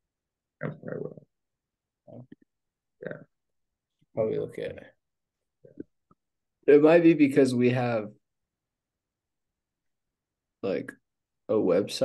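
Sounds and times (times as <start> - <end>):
man speaking on video call: 0.5 - 8.3, 10.5 - 12.0.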